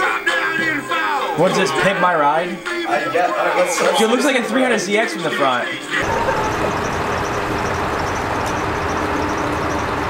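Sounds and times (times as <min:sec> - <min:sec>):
car engine idling: 0:06.0 - 0:10.0.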